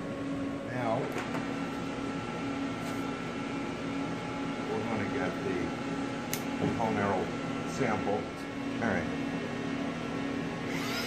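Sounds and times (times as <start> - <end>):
low machine hum: 0.0 - 11.0.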